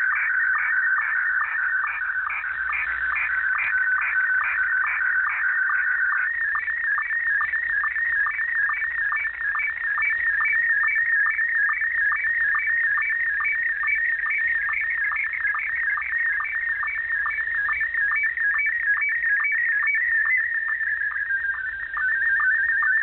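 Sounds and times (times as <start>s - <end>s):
pulsing electronic radio tone: 0.0s - 23.0s.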